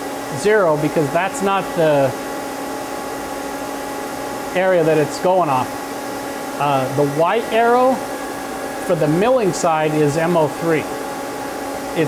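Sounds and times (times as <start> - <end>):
lathe machine hum: 0.0 - 12.0.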